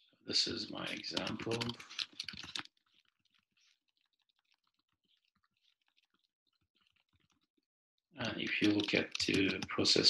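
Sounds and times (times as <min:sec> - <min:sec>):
speech: 0:00.3 - 0:01.8, 0:08.2 - 0:10.0
computer keyboard keystrokes: 0:01.1 - 0:02.6, 0:08.6 - 0:09.7.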